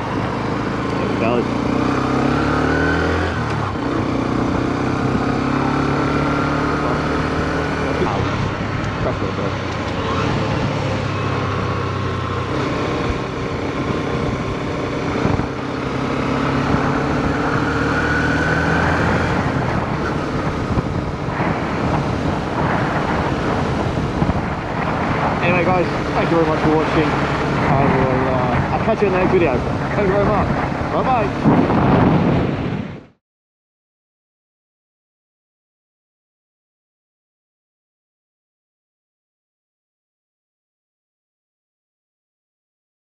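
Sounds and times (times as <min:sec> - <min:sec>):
motorcycle engine accelerating: 0:00.0 - 0:33.2
wind rushing across microphone: 0:02.8 - 0:33.2.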